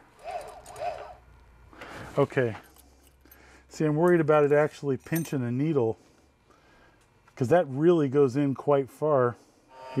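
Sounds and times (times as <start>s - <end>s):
mechanism squeaks: 9.7s - 10.0s.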